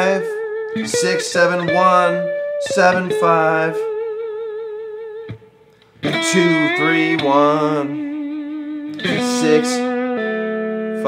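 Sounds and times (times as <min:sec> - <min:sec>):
lap steel guitar note: 0:00.0 - 0:11.0.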